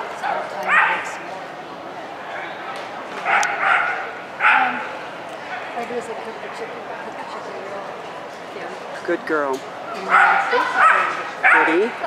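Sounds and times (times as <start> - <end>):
dog barking in high yips: 3.2 - 4.9, 10.1 - 11.9.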